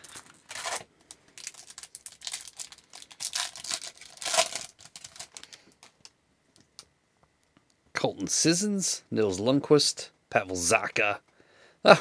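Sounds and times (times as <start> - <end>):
foil wrapper crinkling: 0.0 - 6.1.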